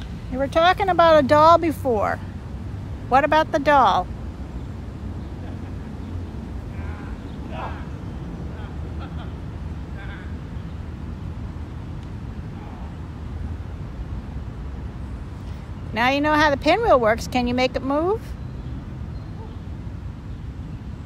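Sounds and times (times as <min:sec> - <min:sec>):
steady low rumble: 0:00.0 - 0:17.6.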